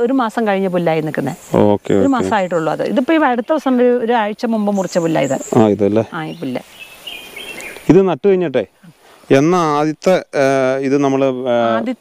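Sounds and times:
woman talking: 0:00.0 - 0:06.7, 0:11.6 - 0:12.0.

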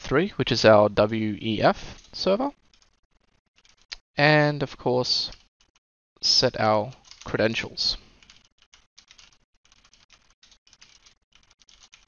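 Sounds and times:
faint keyboard typing: 0:01.8 - 0:04.0, 0:06.8 - 0:12.0.

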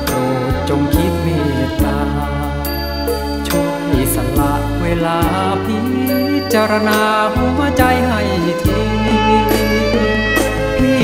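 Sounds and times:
band with bass and percussion: 0:00.0 - 0:11.0
man singing: 0:00.0 - 0:11.0.

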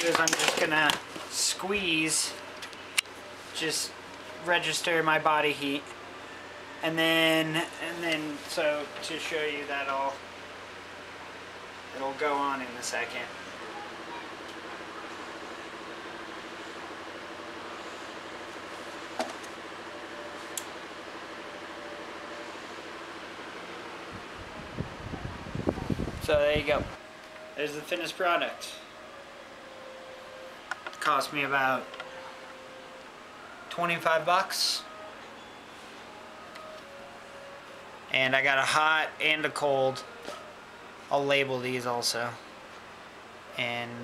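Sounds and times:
electric fan humming: 0:00.0 - 0:44.0
faint steady tones: 0:27.0 - 0:43.8.

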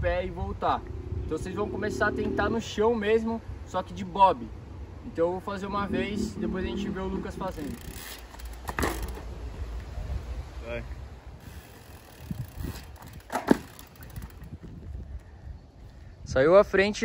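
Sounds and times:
bike rolling on dirt road: 0:05.9 - 0:09.9, 0:11.4 - 0:15.2
bike knocks: 0:08.0 - 0:09.3, 0:12.6 - 0:14.5.

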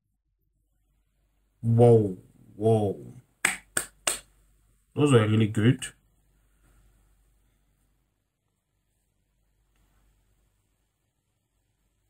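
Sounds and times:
finger snaps: 0:03.4 - 0:04.3.

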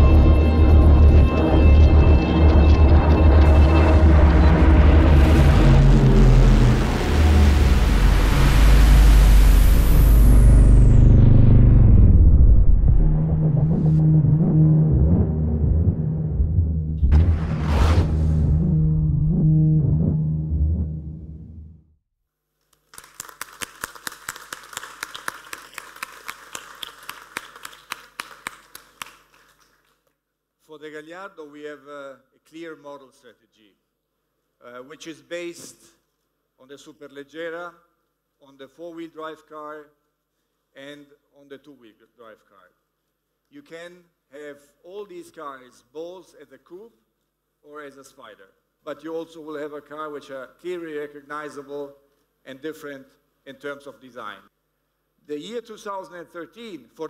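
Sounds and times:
loud rush of noise: 0:00.0 - 0:18.9
deep steady rumble: 0:00.0 - 0:21.8
audience applauding: 0:22.9 - 0:30.0.

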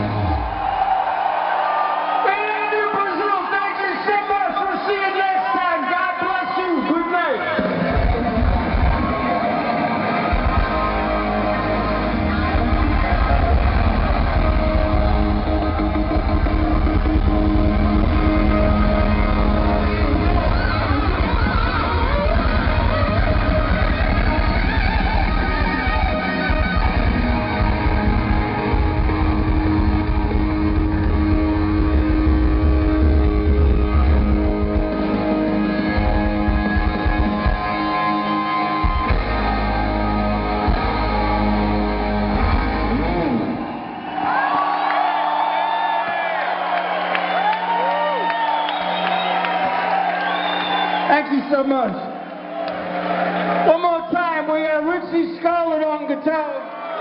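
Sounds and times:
rock band playing live: 0:00.0 - 0:01.3, 0:06.4 - 0:44.8
electric guitar solo: 0:07.3 - 0:43.8.

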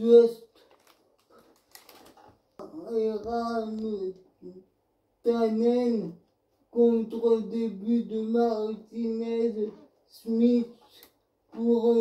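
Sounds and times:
person reading news: 0:00.0 - 0:12.0.

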